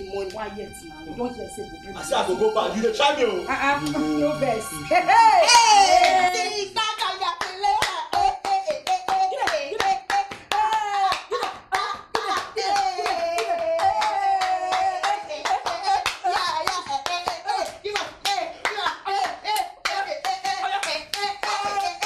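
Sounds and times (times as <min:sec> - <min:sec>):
voices singing: 0:00.0 - 0:22.0
people clapping in rhythm: 0:05.4 - 0:22.0.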